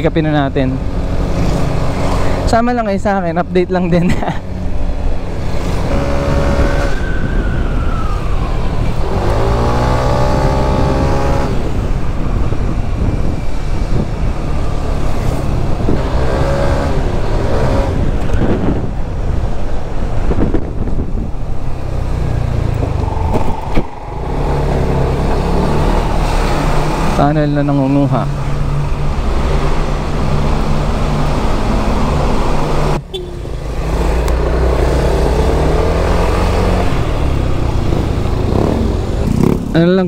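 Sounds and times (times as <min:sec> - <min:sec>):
wind noise on microphone: 0:04.9 - 0:27.2.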